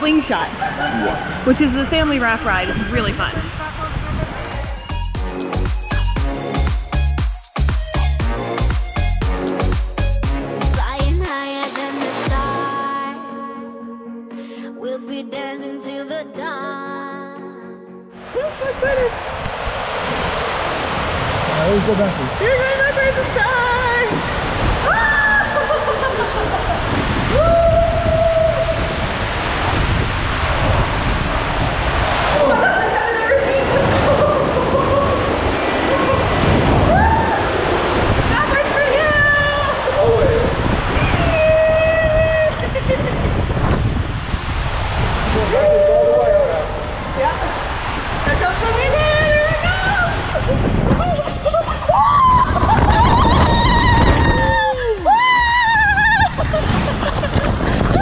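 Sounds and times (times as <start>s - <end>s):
water rushing and sloshing: 0.0s - 5.7s, 18.1s - 58.0s
riders shouting and whooping: 32.3s - 37.6s, 38.3s - 42.9s, 45.3s - 46.9s, 49.0s - 56.6s.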